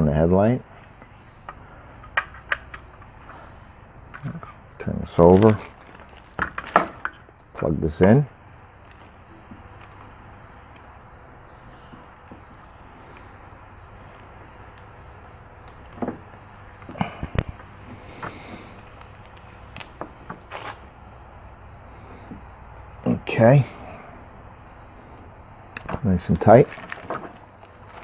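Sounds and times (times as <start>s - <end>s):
insect chirping: 0.0s - 28.0s.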